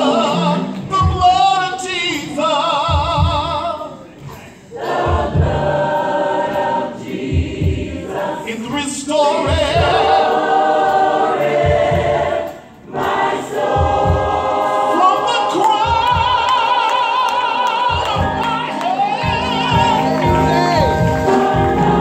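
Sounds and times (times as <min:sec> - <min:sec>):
low beat: 0:00.0 - 0:16.8
gospel choir singing: 0:00.0 - 0:22.0
instrumental accompaniment: 0:00.0 - 0:22.0.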